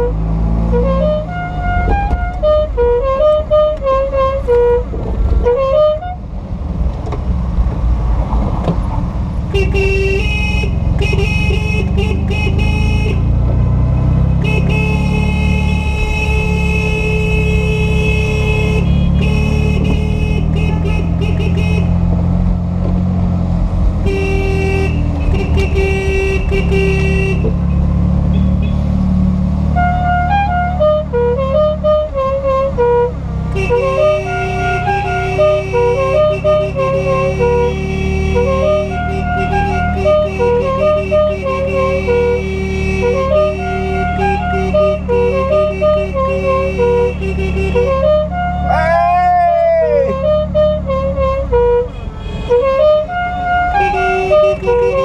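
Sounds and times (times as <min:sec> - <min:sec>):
car horn tooting: 0:00.0 - 0:06.2, 0:09.5 - 0:13.3, 0:14.4 - 0:22.1, 0:24.0 - 0:27.6, 0:29.8 - 0:55.0.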